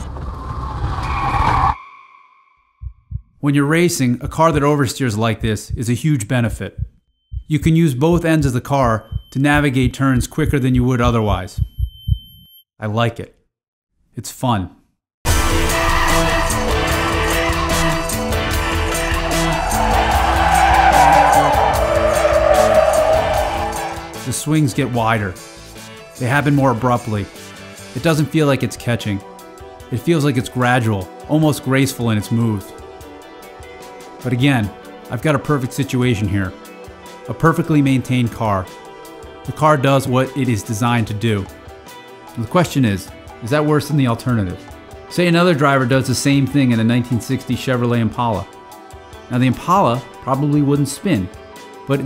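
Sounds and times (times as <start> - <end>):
road noise: 16.2 - 24.3
tyres squealing on concrete: 17.1 - 24.2.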